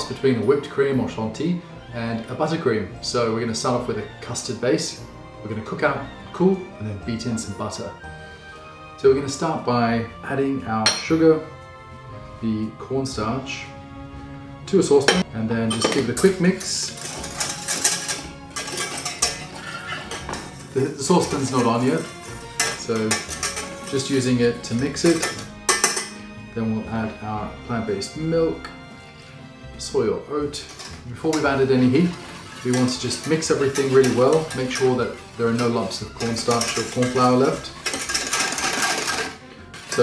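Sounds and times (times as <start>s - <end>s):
soft background music: 0.0s - 40.0s
whisk scraping metal saucepan: 15.1s - 26.1s, 29.1s - 40.0s.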